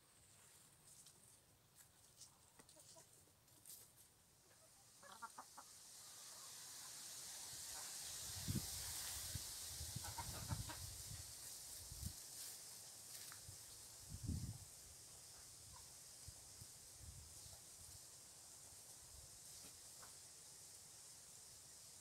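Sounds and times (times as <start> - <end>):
faint steady hiss: 0.0 - 22.0
chickens clucking: 2.4 - 3.8, 4.4 - 7.0, 9.8 - 11.3.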